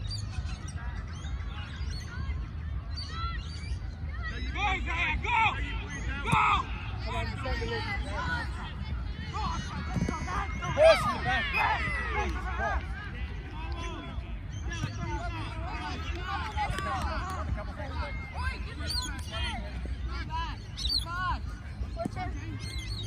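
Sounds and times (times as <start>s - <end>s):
players and spectators shouting: 0.4s - 23.0s.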